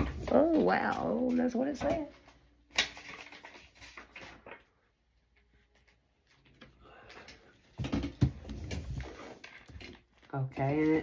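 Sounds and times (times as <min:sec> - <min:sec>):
cards rustling: 0:02.7 - 0:04.7.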